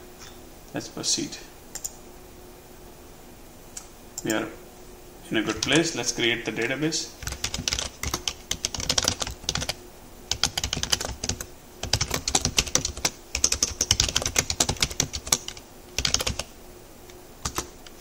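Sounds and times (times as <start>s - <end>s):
typing on computer keyboard: 5.5s - 5.8s, 7.2s - 16.5s, 17.4s - 18.0s.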